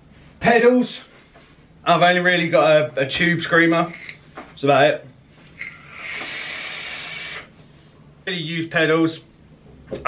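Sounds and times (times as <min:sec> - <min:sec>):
vape hiss: 0:05.6 - 0:07.5.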